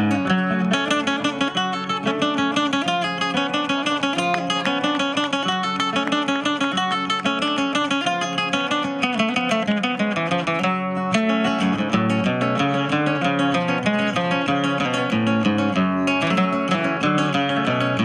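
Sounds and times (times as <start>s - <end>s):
acoustic guitars plucked and strummed: 0.0s - 18.0s.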